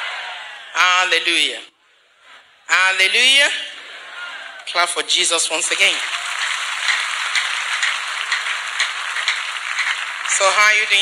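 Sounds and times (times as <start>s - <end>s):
congregation clapping: 5.8s - 11.0s.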